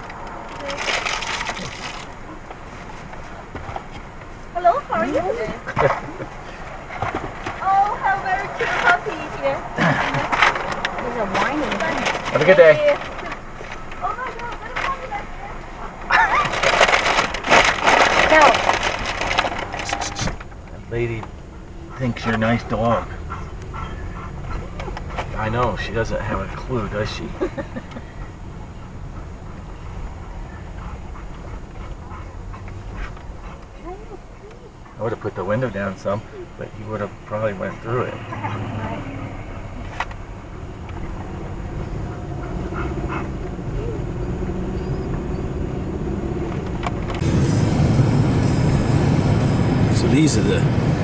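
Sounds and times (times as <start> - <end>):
road and engine noise: 0.0 - 51.0
dog whining: 14.0 - 16.8, 21.4 - 25.6, 37.5 - 46.4.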